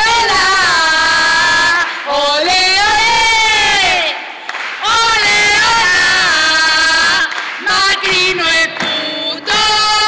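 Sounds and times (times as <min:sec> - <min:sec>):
crowd chanting: 0:03.4 - 0:10.0.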